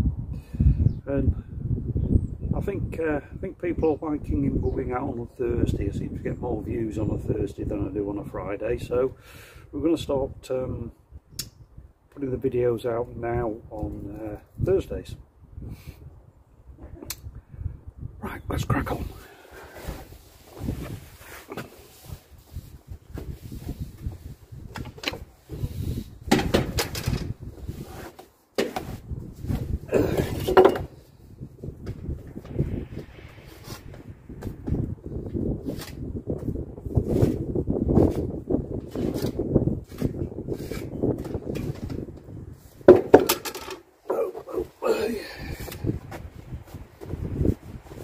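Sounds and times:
low rumble: 31.1 - 35.6.

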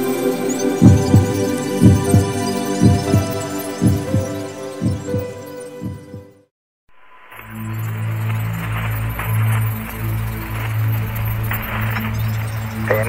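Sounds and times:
synth pad chords: 0.0 - 6.5, 7.3 - 13.0.

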